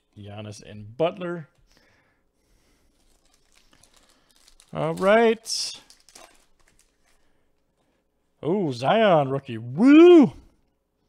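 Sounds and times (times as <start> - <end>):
foil wrapper rustle: 2.6 - 7.4.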